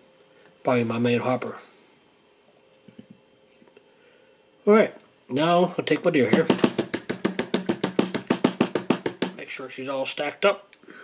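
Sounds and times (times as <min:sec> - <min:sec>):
hair stacker tapping on bench: 0:06.3 - 0:09.4.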